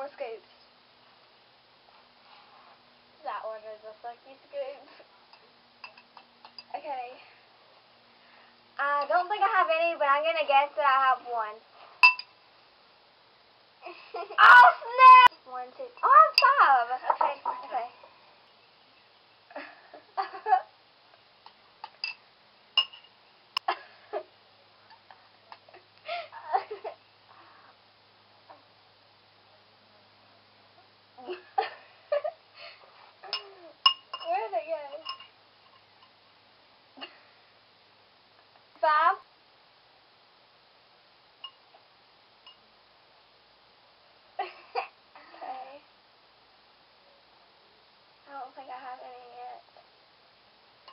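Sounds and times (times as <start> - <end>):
background hiss: 0.0 - 50.9
girl giggling: 31.2 - 32.4.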